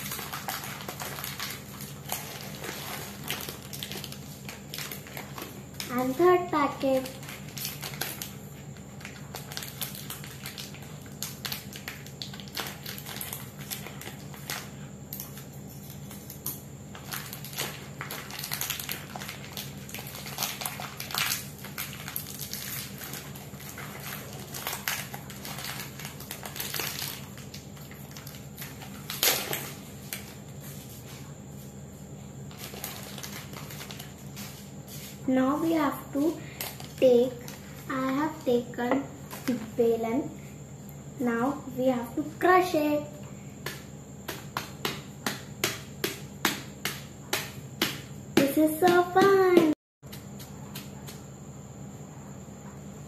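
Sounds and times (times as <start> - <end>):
plastic wrappers crinkling: 0.0 - 30.4, 32.5 - 34.6, 36.4 - 37.8.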